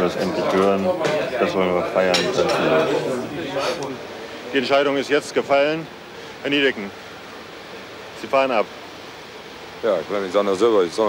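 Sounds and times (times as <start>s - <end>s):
people talking: 0.0s - 7.0s, 8.2s - 8.7s, 9.8s - 11.0s.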